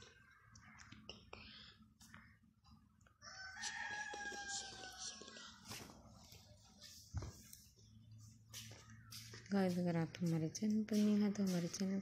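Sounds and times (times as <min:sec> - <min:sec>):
rooster crowing: 0:03.2 - 0:05.4.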